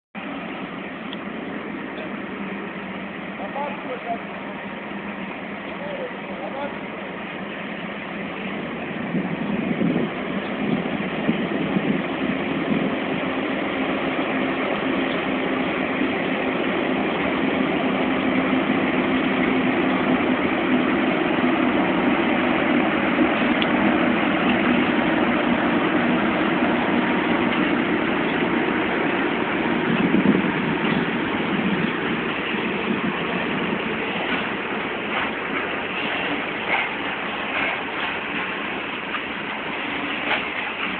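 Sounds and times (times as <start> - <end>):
electric locomotive drone: 0.2 - 40.9
wheel clicks over rail joints: 34.1 - 40.9.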